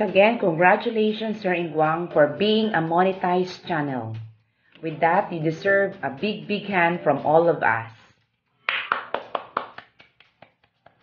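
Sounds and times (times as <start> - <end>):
person clapping hands: 8.6 - 11.0.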